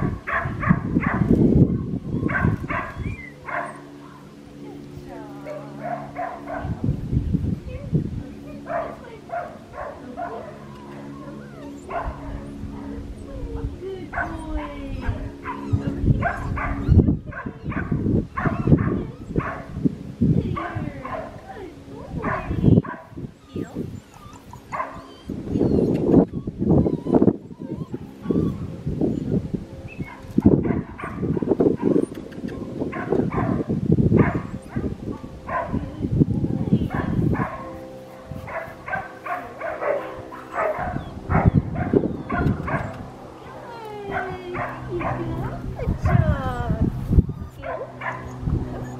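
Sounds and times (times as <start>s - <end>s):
steady low hum: 0.0s - 48.9s
puppy yipping and whimpering: 2.1s - 3.8s, 10.4s - 12.5s, 15.4s - 19.6s, 23.4s - 30.4s, 39.9s - 46.5s, 47.1s - 48.9s.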